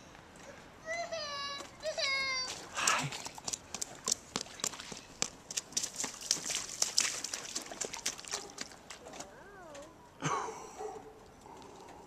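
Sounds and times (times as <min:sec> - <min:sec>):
footsteps in wet slush: 0:01.6 - 0:09.9.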